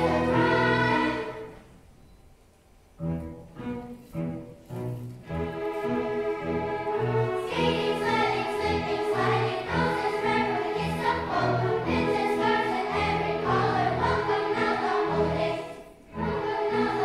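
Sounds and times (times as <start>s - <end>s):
school orchestra playing: 0.0s - 1.7s, 2.9s - 17.0s
children's choir singing: 0.0s - 1.8s, 6.1s - 17.0s.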